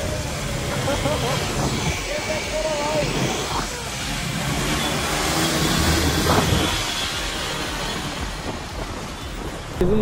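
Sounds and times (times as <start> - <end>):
motorcycle engine revving: 0.0 - 9.5
motorcycle engines running: 0.0 - 10.0
wind rush on microphone: 5.8 - 6.9.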